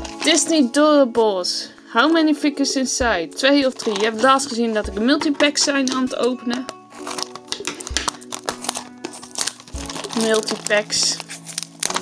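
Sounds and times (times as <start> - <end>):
background music: 0.0 - 12.0
cardboard box crinkling and rustling: 3.7 - 4.8, 6.9 - 12.0
small clicks and crackles: 3.7 - 4.8, 5.6 - 12.0.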